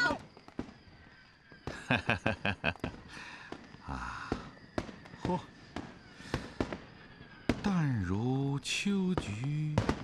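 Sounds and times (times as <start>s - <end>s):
firecracker bangs: 9.2s - 10.0s.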